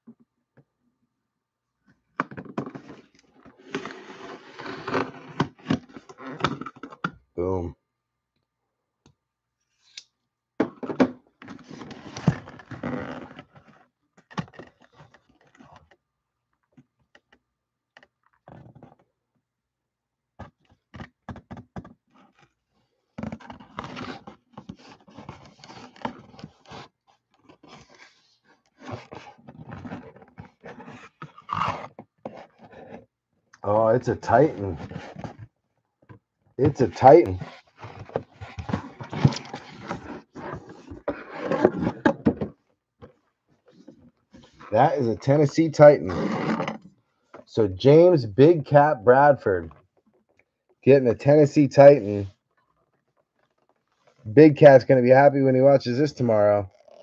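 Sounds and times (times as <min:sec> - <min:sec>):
cardboard scraping and rustling: 0:02.4 - 0:06.7, 0:11.4 - 0:15.9, 0:23.2 - 0:33.1, 0:34.2 - 0:35.5, 0:36.6 - 0:45.4, 0:46.1 - 0:46.9
cardboard box being opened: 0:36.6 - 0:43.2.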